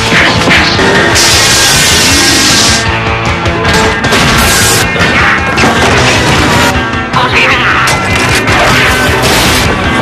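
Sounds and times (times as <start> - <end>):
loud rock music: 0.0 - 10.0.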